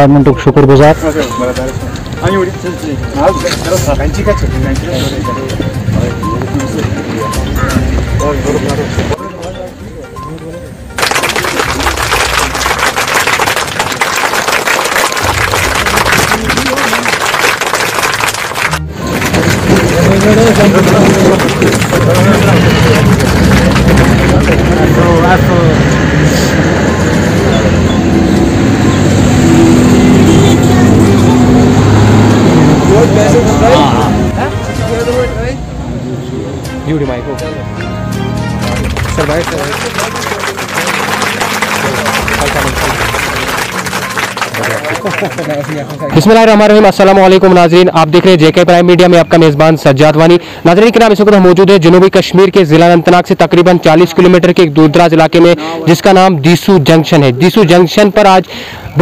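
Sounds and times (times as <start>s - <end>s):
people talking indistinctly: 0.0s - 13.4s, 15.3s - 28.1s, 32.4s - 59.0s
music: 0.0s - 24.6s, 33.6s - 45.4s
loud steady background noise: 0.0s - 59.0s
people's voices: 0.0s - 59.0s
short high beep: 3.2s - 8.5s.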